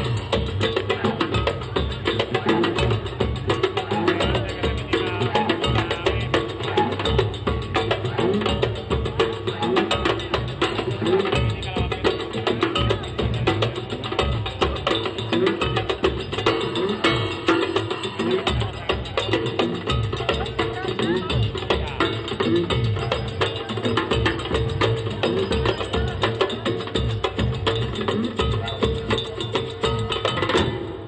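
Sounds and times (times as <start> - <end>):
drum kit and hand percussion: 0.0 - 31.0.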